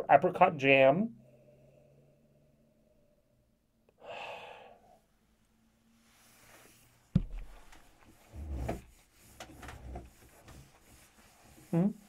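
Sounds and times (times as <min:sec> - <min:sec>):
rubbing and handling noises: 0:06.0 - 0:12.0.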